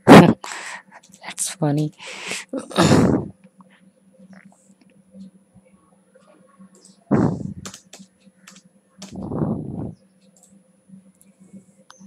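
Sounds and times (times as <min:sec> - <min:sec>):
keyboard keystrokes: 0:07.6 - 0:09.2.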